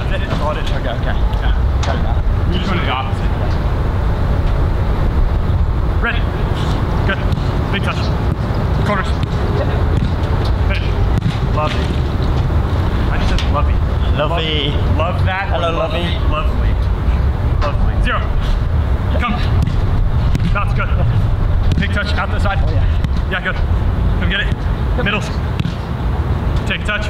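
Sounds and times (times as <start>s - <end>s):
low outdoor rumble: 0.0s - 27.0s
football being struck: 9.1s - 11.9s, 19.5s - 20.9s, 21.7s - 22.1s, 25.5s - 25.9s.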